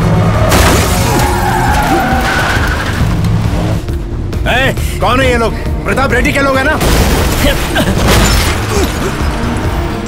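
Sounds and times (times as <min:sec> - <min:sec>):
car and lorry engines: 0:00.0 - 0:06.1, 0:07.0 - 0:10.0
background music: 0:00.0 - 0:10.0.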